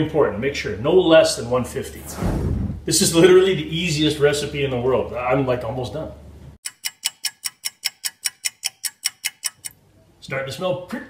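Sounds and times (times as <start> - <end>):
fast clock ticking: 6.6 - 9.7.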